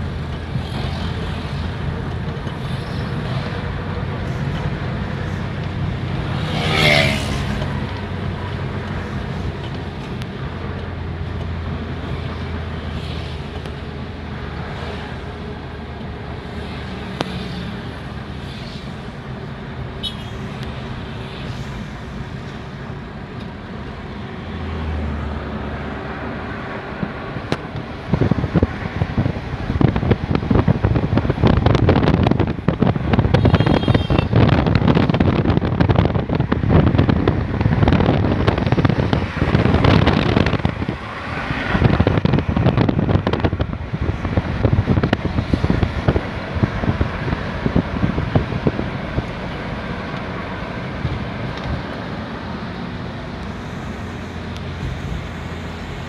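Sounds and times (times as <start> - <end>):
road and engine hum: 0.0 - 56.0
wind buffeting microphone: 26.9 - 52.5.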